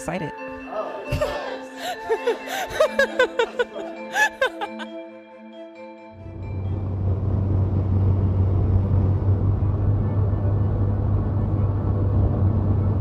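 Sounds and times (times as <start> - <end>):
steady low rumble: 6.2 - 13.0.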